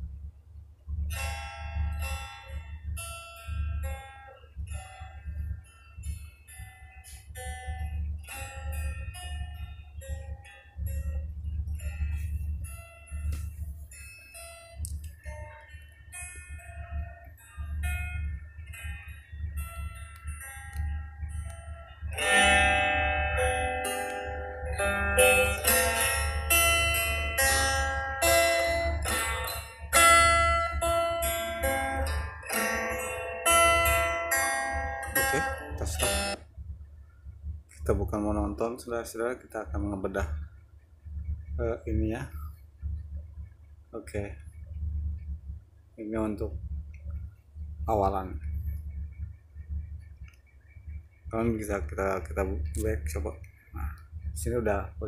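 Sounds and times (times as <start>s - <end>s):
steady low hum: 0.0s - 55.0s
instrumental guitar music: 0.9s - 36.5s.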